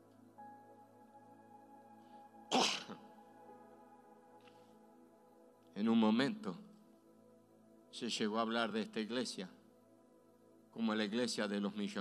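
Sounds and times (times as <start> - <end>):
man sneezing into microphone: 2.5 - 3.0.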